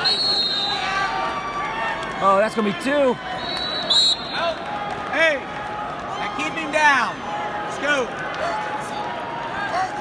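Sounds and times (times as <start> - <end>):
arena crowd din: 0.0 - 10.0.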